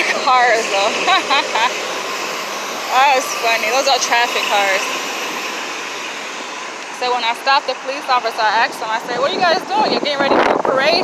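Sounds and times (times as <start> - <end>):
traffic on a wet road: 0.0 - 1.7, 2.9 - 4.9, 6.7 - 11.0.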